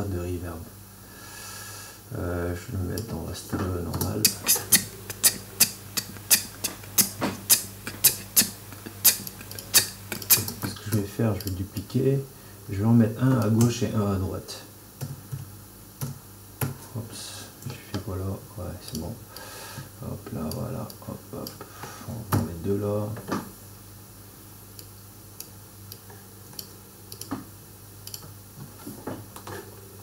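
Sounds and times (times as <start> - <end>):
chopped voice samples: 2.8 - 5.3
hi-hat ticks: 4.2 - 11.6.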